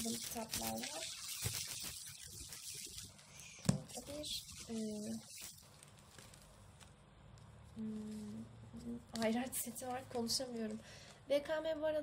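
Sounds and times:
paper rustling: 0:00.0 - 0:07.0.

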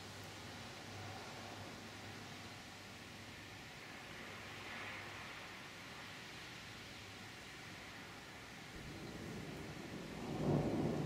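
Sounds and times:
thunder rumbling: 0:08.8 - 0:11.0.

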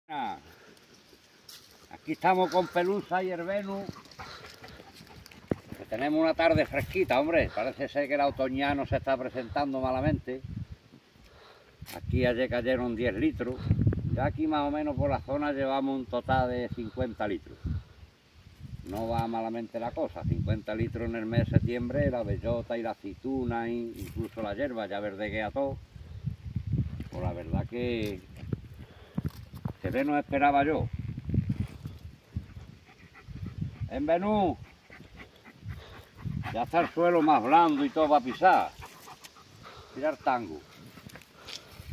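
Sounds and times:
footsteps on dry earth: 0:00.2 - 0:08.3, 0:26.5 - 0:33.6, 0:34.4 - 0:41.9
dog panting: 0:02.4 - 0:06.7, 0:32.3 - 0:41.5.

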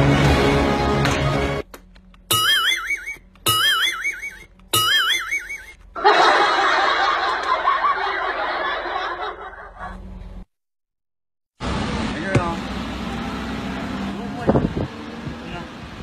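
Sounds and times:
wobbling cartoon whistle: 0:02.3 - 0:05.8
canned crowd laughter: 0:06.0 - 0:10.1.

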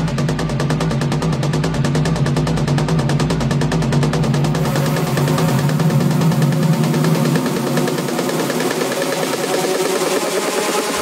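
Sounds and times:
techno music breakdown: 0:00.0 - 0:11.0.

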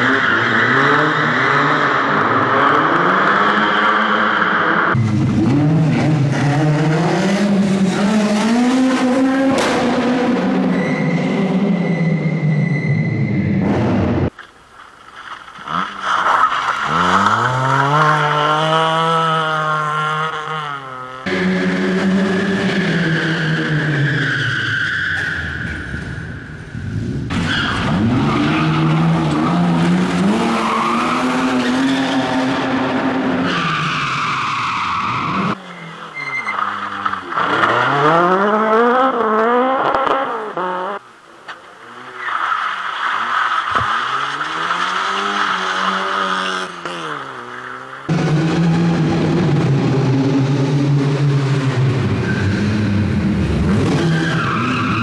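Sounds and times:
rally car engines revving: 0:00.0 - 0:14.3, 0:15.6 - 0:55.0
tyre squeal: 0:10.6 - 0:13.6, 0:33.5 - 0:38.1.

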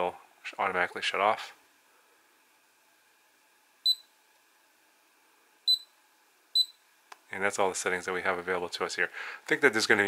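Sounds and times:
short high-pitched electronic beeps: 0:03.9 - 0:04.1, 0:05.7 - 0:05.9, 0:06.6 - 0:06.8.

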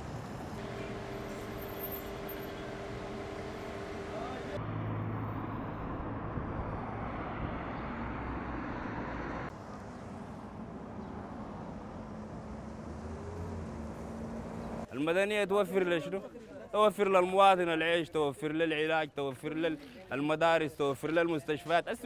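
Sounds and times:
traffic: 0:00.0 - 0:22.0.

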